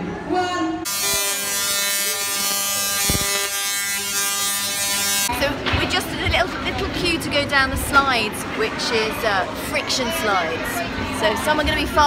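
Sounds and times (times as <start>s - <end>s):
harsh electric discharge buzz: 0.9s - 5.3s.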